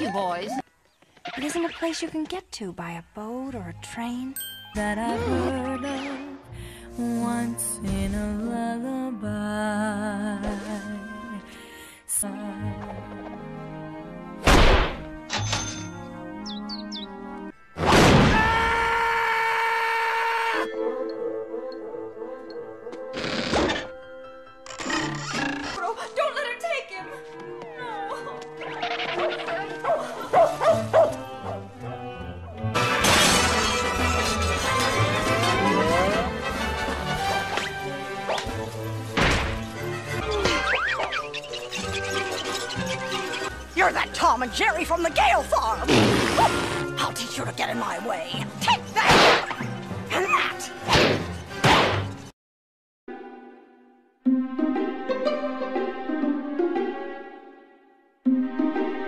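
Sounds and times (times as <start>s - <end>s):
cartoon orchestral music: 3.6s - 6.4s, 24.5s - 39.1s, 39.7s - 51.6s, 53.1s - 59.0s
loud whack: 14.4s - 15.0s, 17.8s - 18.6s, 39.2s - 39.6s, 49.0s - 49.6s, 50.9s - 52.1s.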